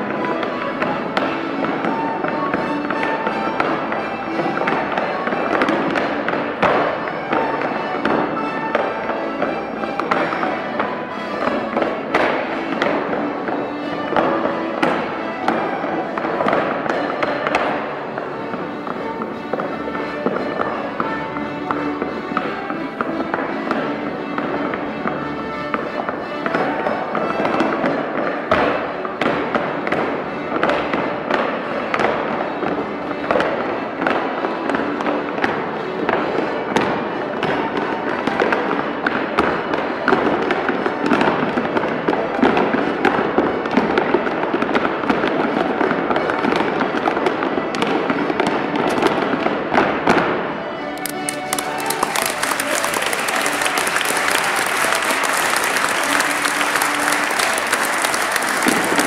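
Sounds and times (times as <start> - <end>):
accompanying music: 0.0 - 59.0.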